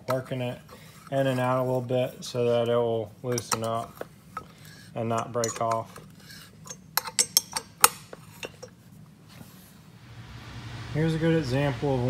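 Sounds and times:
wrench clinking on metal bolt: 6.6 - 8.7.

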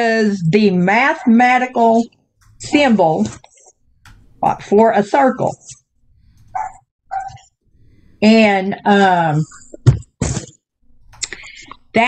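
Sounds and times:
dog barking: 6.5 - 7.4.

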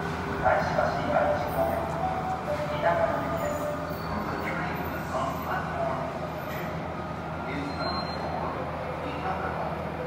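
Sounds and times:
subway train rumbling in tunnel: 0.0 - 10.0.

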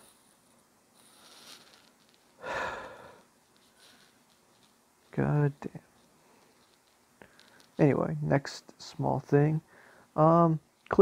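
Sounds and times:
person breathing in: 2.4 - 3.3.

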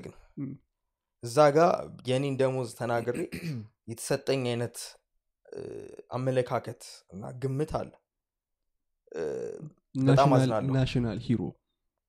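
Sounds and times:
man speaking: 0.0 - 0.6, 1.2 - 8.0, 9.2 - 11.6.

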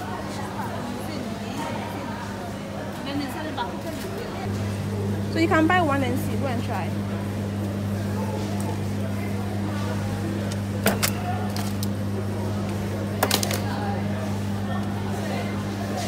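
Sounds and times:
freezer electrical hum: 0.0 - 16.0.

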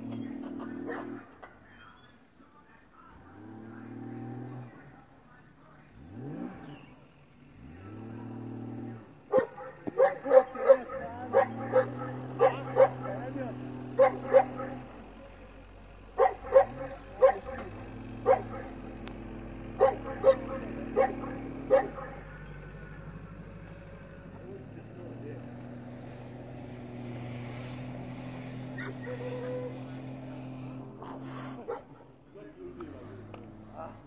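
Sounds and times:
car engine revving: 0.0 - 1.6, 2.9 - 34.0
dog barking: 0.8 - 1.2, 9.3 - 14.9, 16.2 - 18.9, 19.8 - 22.4, 28.8 - 30.0, 31.5 - 32.1.

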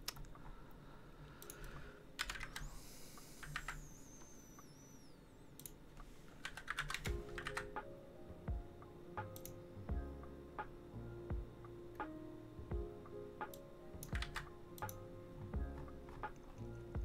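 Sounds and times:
computer keyboard typing: 1.4 - 4.7, 6.4 - 7.8, 13.4 - 15.0.

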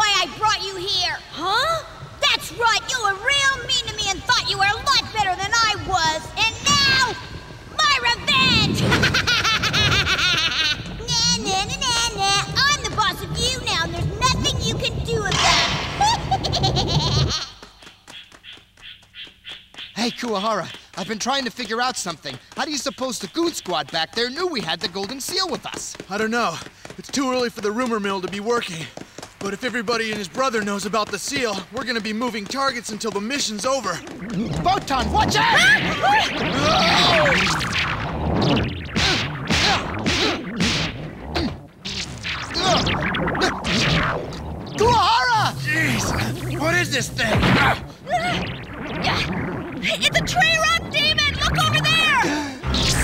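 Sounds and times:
noisy rush: 0.2 - 17.4, 32.7 - 53.0
cartoon whip-crack whooshes: 8.3 - 10.2, 14.3 - 17.3, 33.9 - 53.0
loud cackling laugh: 8.8 - 11.0, 16.0 - 17.7.

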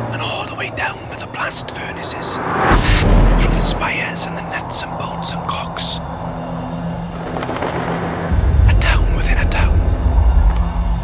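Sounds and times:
constant hum: 0.0 - 11.0
low rumble: 2.2 - 5.2, 6.0 - 11.0.

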